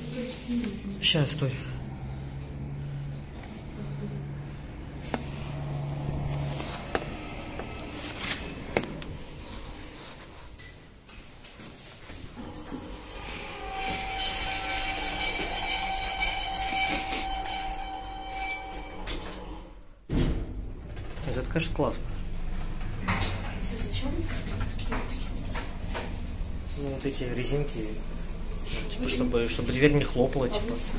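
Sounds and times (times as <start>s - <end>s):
steady lift whine: 0.0s - 11.2s, 12.3s - 30.9s
lift low hum: 1.5s - 11.2s, 21.9s - 30.9s.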